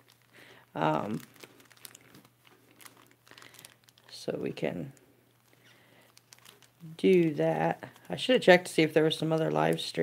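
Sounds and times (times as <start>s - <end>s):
foil wrappers crinkling: 0.0s - 10.0s.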